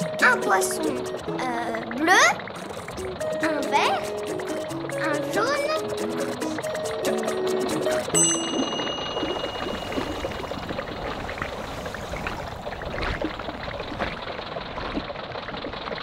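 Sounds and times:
underwater bubbling: 0:00.0 - 0:16.0
bright chime: 0:08.2 - 0:10.7.

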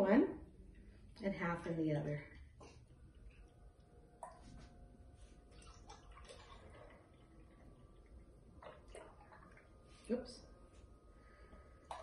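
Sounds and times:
liquid pouring into a jar: 0:05.4 - 0:10.0.

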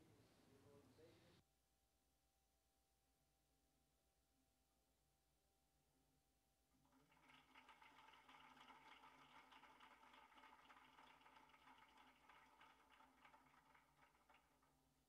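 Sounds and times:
congregation applause: 0:06.9 - 0:14.8.

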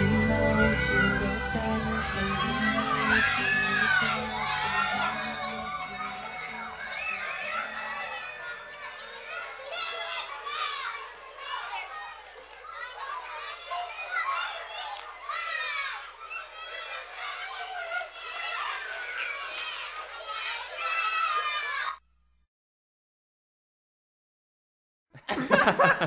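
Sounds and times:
children chattering and calling out: 0:00.0 - 0:22.0.

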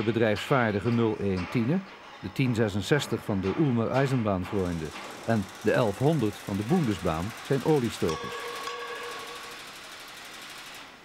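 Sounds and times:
machine whine: 0:04.4 - 0:11.0
even tones: 0:07.3 - 0:09.6.

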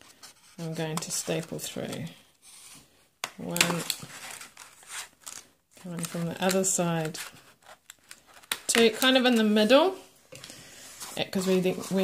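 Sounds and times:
paper rustling and crinkling: 0:03.6 - 0:09.4.

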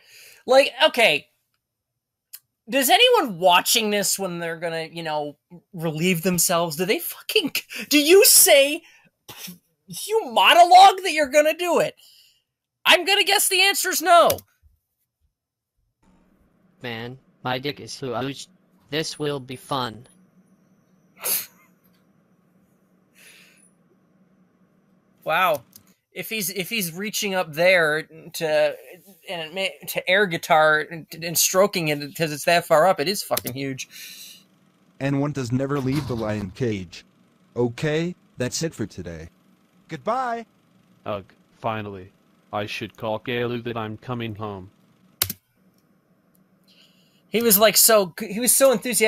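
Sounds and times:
sharp burst of breath: 0:23.1 - 0:23.6.

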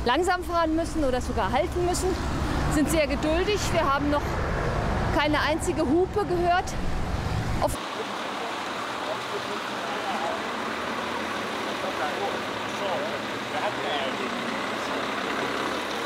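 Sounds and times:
city street traffic: 0:00.0 - 0:16.0.

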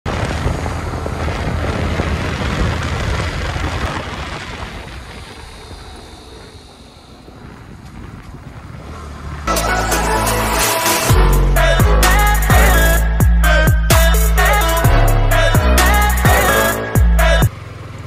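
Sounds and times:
wind rushing over microphone: 0:00.1 - 0:09.5
motorcycle engine: 0:00.1 - 0:18.0
electronic music with heavy beat: 0:09.5 - 0:17.5.

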